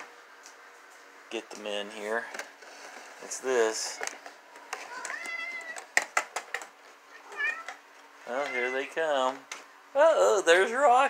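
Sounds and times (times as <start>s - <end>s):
cat meowing: 4.9s - 5.9s, 7.1s - 9.0s.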